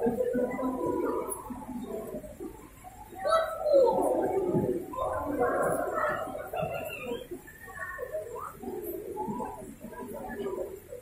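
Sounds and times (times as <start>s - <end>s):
bird cooing: 3.1s - 10.7s.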